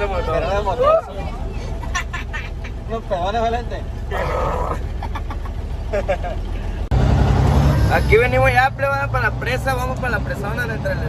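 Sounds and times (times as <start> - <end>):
voices: 0.0 - 6.9
diesel engine rumbling: 0.0 - 11.0
laughter: 1.6 - 2.9, 4.8 - 6.6.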